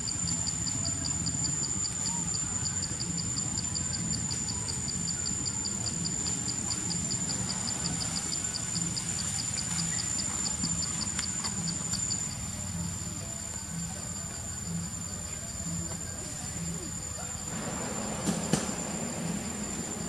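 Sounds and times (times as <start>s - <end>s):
insect chirping: 0.0s - 20.0s
insect high-pitched trill: 0.0s - 20.0s
low background rumble: 0.0s - 20.0s.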